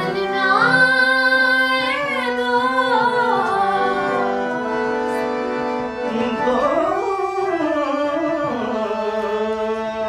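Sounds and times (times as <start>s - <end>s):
woman singing: 0.0s - 4.7s, 6.1s - 10.0s.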